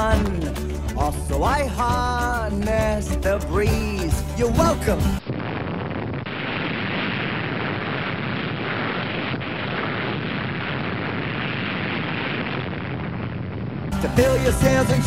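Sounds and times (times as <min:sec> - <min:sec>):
bomb explosion roar: 0:05.2 - 0:15.0.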